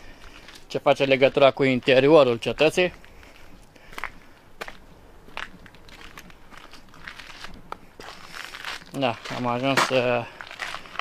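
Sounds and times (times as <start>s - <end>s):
footsteps on stone path: 0.0s - 11.0s.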